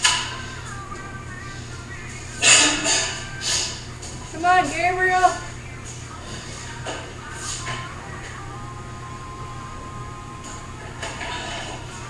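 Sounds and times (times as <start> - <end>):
faint background music: 0.0 - 12.0
steady low hum: 0.0 - 12.0.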